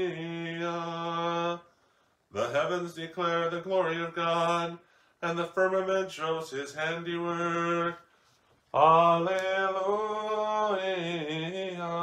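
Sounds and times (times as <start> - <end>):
man chanting: 0.0 - 1.7, 2.3 - 8.1, 8.8 - 12.0.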